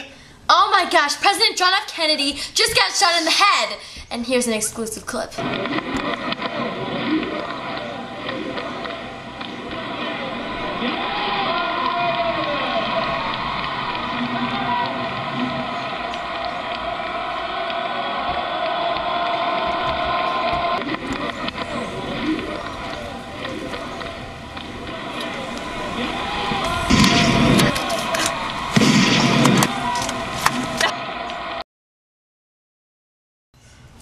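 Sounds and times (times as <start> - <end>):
outdoor noise: 2.6 - 31.6
golf cart motor hum: 5.5 - 28.8.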